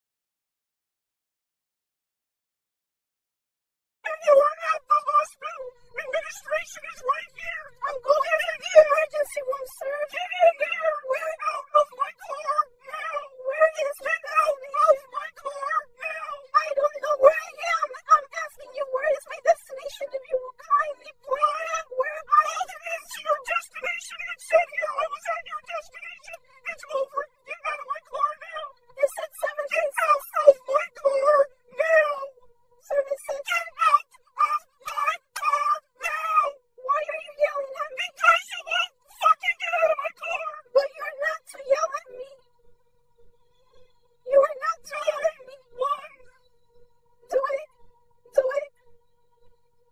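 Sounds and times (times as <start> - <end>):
high-pitched screaming voice: 4.1 - 32.3, 32.9 - 42.4, 44.3 - 46.2.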